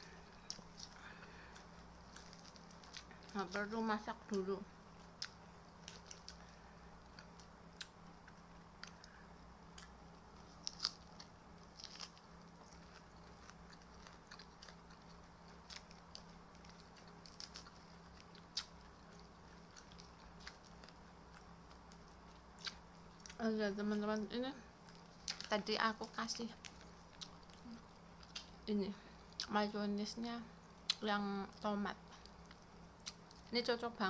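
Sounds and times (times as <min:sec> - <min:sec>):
chewing crunchy vegetables: 0:00.0 - 0:29.7, 0:30.6 - 0:33.6
low hum: 0:00.0 - 0:34.0.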